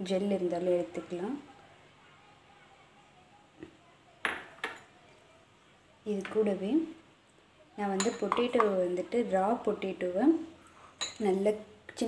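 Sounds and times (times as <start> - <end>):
glass bowls clinking: 7.9 - 8.8, 11.0 - 11.4.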